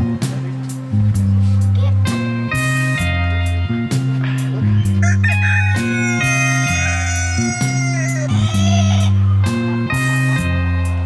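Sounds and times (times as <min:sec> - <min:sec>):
guitar music with bass line: 0:00.0 - 0:11.0
rooster crowing: 0:05.0 - 0:09.1.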